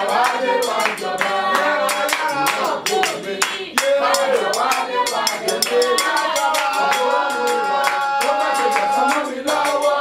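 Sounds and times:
person singing: 0.0 - 10.0
rhythmic hand clapping: 0.0 - 10.0.

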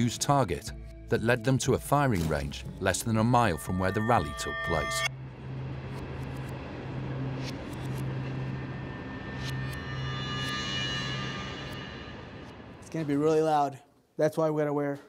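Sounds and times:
outdoor traffic noise: 5.1 - 12.9.

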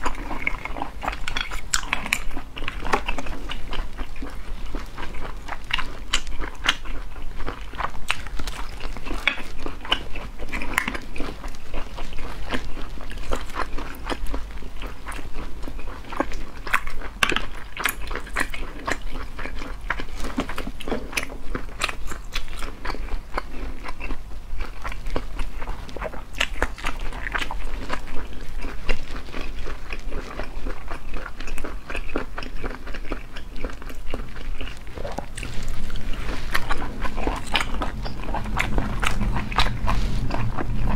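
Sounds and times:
low steady hum: 0.0 - 40.9
wet biting and chewing: 0.0 - 40.9.

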